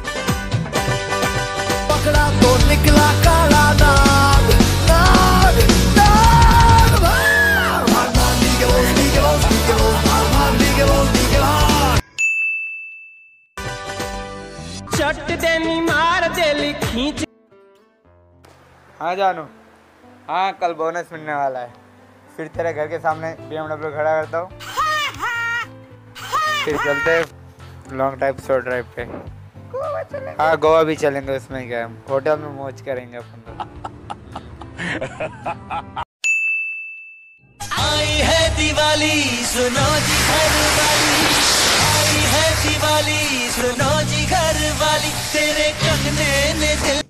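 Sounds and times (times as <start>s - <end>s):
rock music with singing: 0.0s - 12.0s, 13.8s - 17.3s, 37.6s - 47.0s
soft music: 0.0s - 12.1s, 13.6s - 36.0s, 37.5s - 47.0s
high bell-like ding: 12.0s - 13.5s, 36.2s - 37.6s
voice: 19.0s - 19.5s, 20.3s - 21.8s.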